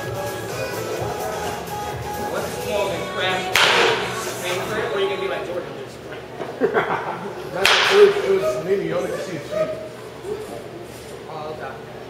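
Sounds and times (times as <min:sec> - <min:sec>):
background music: 0:00.0 - 0:05.3
voices: 0:00.0 - 0:12.0
baseball bat hitting ball: 0:03.5 - 0:04.3, 0:07.6 - 0:08.3.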